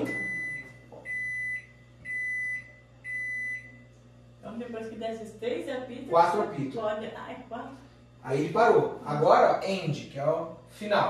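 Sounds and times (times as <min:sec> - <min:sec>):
microwave oven beeping: 0:00.0 - 0:05.0.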